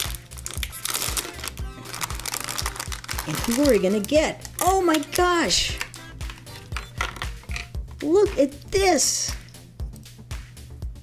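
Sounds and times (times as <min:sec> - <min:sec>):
plastic bag crinkling: 0:00.0 - 0:07.7
background music: 0:00.0 - 0:11.0.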